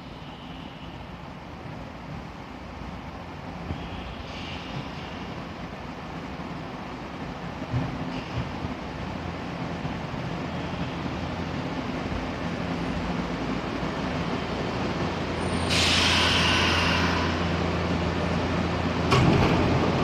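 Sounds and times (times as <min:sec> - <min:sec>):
brake air hiss: 0:00.0 - 0:01.2, 0:03.8 - 0:05.5, 0:15.4 - 0:17.8
electric train pulling in: 0:00.0 - 0:20.0
train doors clunking open: 0:07.3 - 0:10.4, 0:18.8 - 0:20.0.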